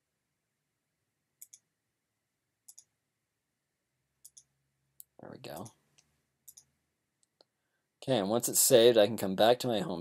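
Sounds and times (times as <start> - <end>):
faint computer mouse clicks: 1.4 - 1.6, 2.7 - 2.9, 4.2 - 7.5.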